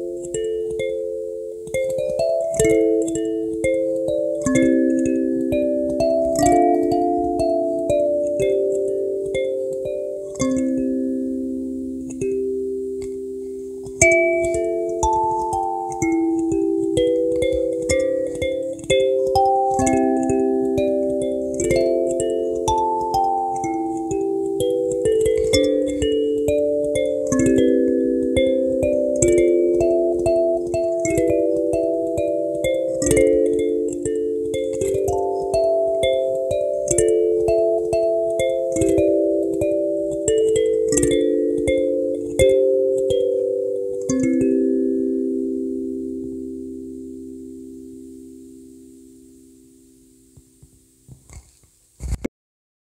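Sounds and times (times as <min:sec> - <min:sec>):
kalimba melody: 0:00.0 - 0:51.0.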